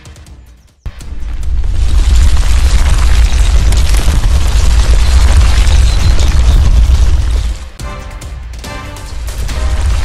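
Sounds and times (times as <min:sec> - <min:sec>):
music: 0:00.0 - 0:01.0, 0:07.5 - 0:10.0
deep rumble of landslide: 0:00.9 - 0:07.8, 0:09.1 - 0:10.0.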